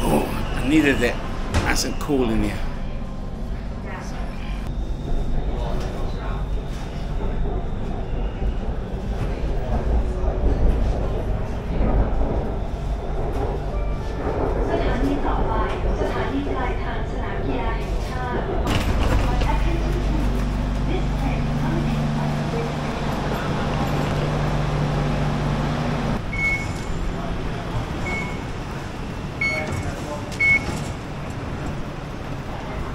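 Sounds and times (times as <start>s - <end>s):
train low rumble: 0.0s - 32.9s
steady low hum: 18.5s - 26.3s.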